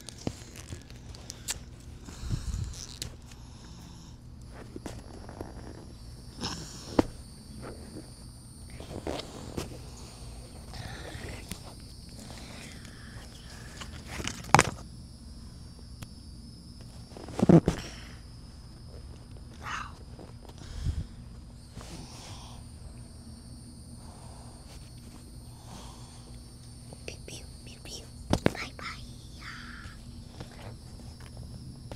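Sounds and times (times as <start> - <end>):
child whispering: 19.6 - 20.0, 27.0 - 30.0.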